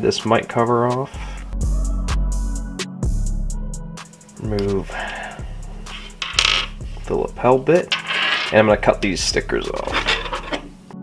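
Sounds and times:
background music: 0.0 - 11.0
plastic parts clattering on table: 6.1 - 6.8, 7.9 - 8.6, 9.8 - 10.7.

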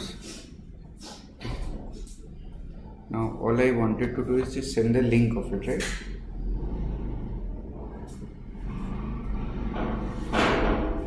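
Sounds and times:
low steady rumble: 1.8 - 11.0.

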